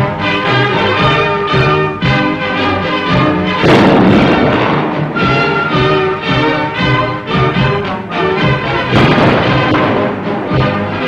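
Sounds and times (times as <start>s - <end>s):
military band music: 0.0s - 11.0s
loud crash: 3.6s - 6.4s, 8.9s - 10.9s.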